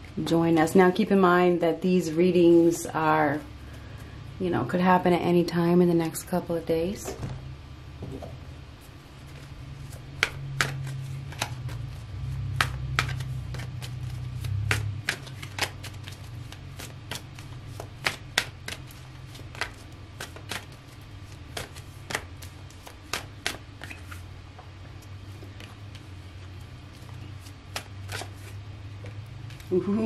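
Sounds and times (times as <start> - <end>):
cards being shuffled: 8.8 - 24.3, 24.9 - 29.8.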